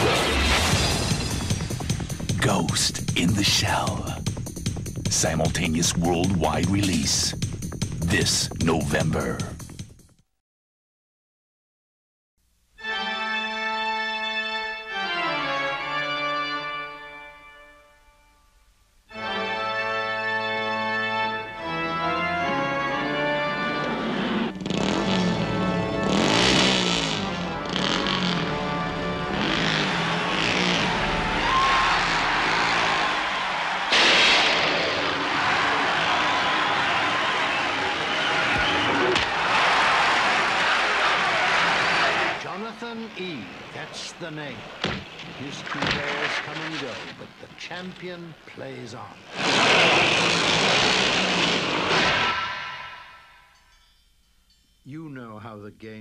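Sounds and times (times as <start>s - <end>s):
organ music: 0.7s - 9.6s, 12.8s - 34.4s
engines revving: 23.0s - 37.5s, 49.2s - 52.8s.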